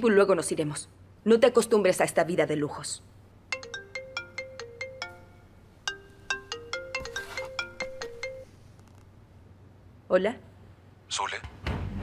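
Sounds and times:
mobile phone ringtone melody: 3.5 - 8.7.

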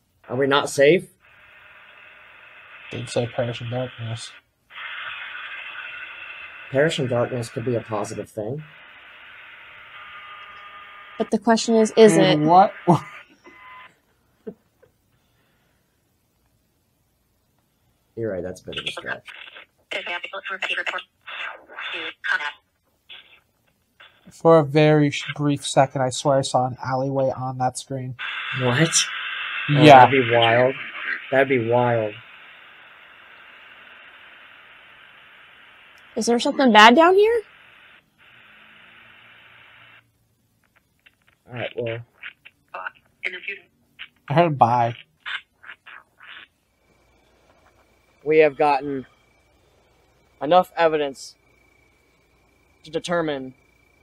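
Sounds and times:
static hiss: 0.0 - 54.0
steady tone: 29.7 - 32.2, 46.9 - 54.0.

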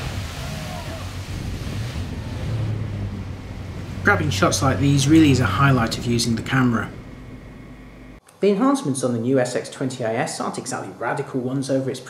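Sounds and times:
rush of water: 0.0 - 7.9
boat engine noise: 0.0 - 8.2
wind buffeting microphone: 0.0 - 8.2.

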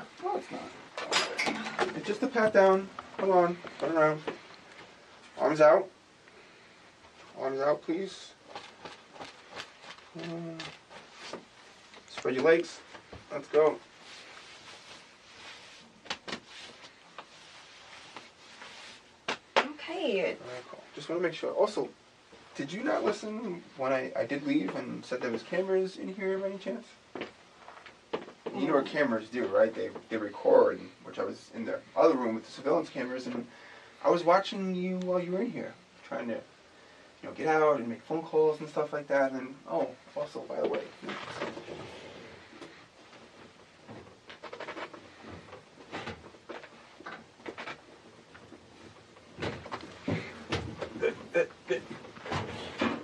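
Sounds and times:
rustling: 6.4 - 19.6, 39.7 - 53.0.

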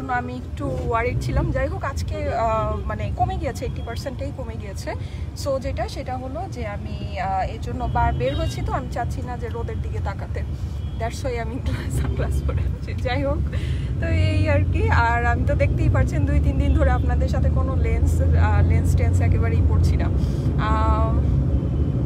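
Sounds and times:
woman talking: 0.0 - 21.3
car engine rumble and road noise: 0.0 - 22.0.

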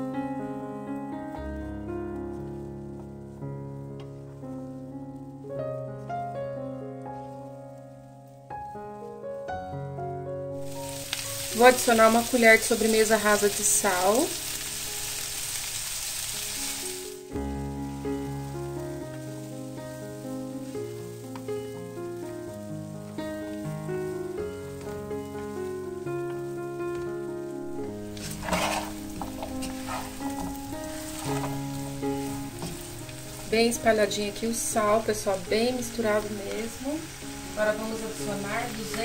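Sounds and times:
background music held notes: 0.0 - 39.0
beans sizzling in a pot: 2.2 - 5.4, 10.6 - 39.0
wooden spoon scraping a pot: 27.8 - 32.9.

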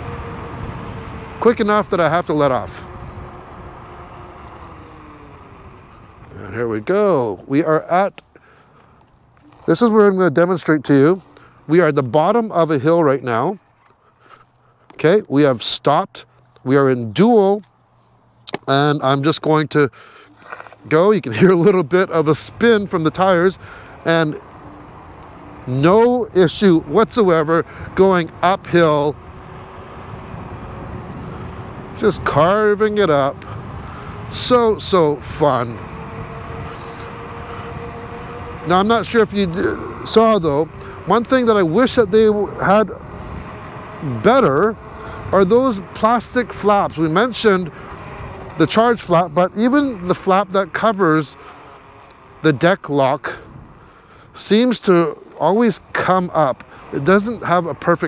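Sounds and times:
road and wind noise: 0.0 - 58.0
electric motor whine: 2.6 - 6.4, 28.6 - 45.5.

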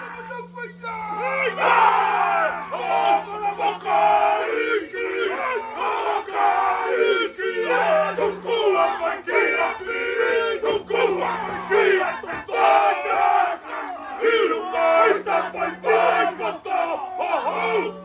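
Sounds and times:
low held note: 0.0 - 13.5
men chanting and shouting: 0.0 - 18.0.

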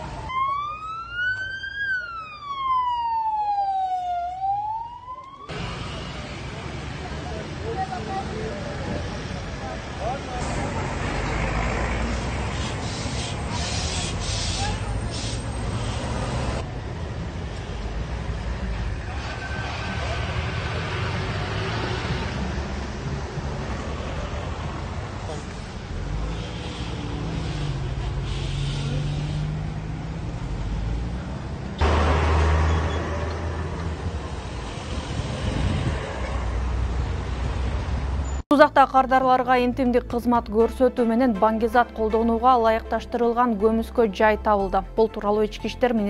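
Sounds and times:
road traffic noise: 0.0 - 46.0
vehicles passing: 0.0 - 46.0
vehicle engine hum: 5.5 - 39.8
people talking: 38.5 - 46.0.

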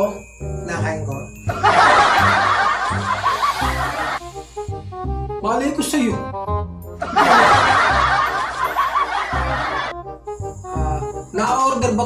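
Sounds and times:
group of people laughing: 1.5 - 4.2, 7.0 - 9.9.

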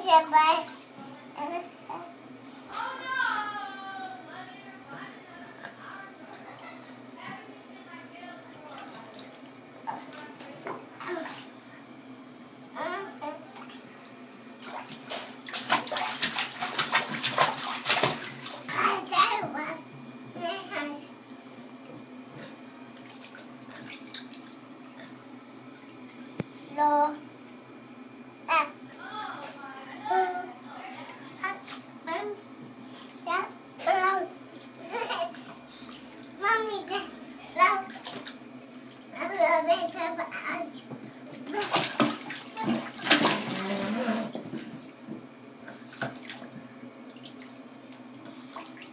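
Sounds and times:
water splashing in a tub: 8.4 - 11.6, 14.6 - 19.4, 22.8 - 27.0, 37.6 - 39.4, 41.2 - 48.9.

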